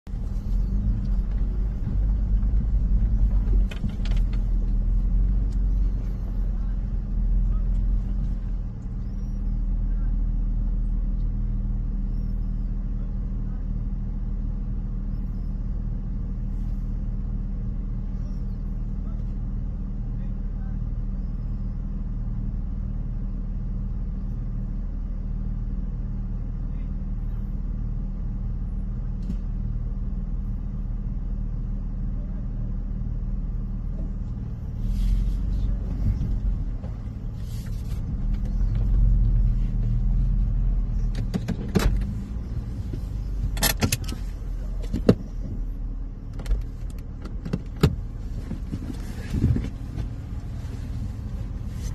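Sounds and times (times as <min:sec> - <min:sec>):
vehicle engine idling: 0:00.0 - 0:51.9.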